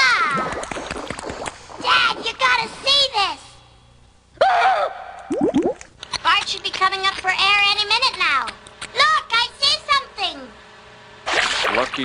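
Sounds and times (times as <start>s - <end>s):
rising bubble bloops: 5.2s - 5.9s.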